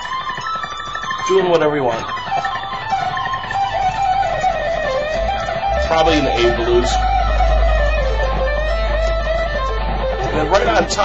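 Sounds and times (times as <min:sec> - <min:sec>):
electric guitar solo: 0:00.0 - 0:11.0
low hum: 0:02.6 - 0:11.0.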